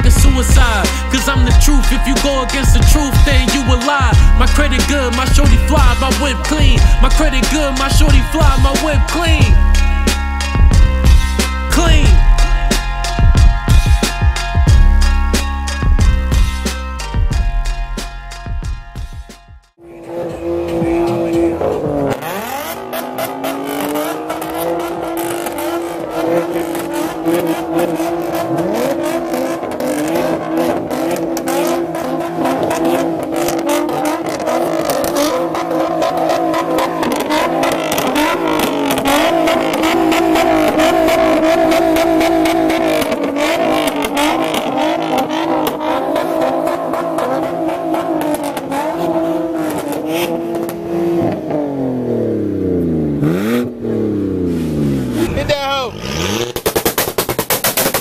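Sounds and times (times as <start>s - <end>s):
sharp exhaust cracks: 0.0s - 19.4s, 20.3s - 58.0s
car engine revving high: 0.0s - 58.0s.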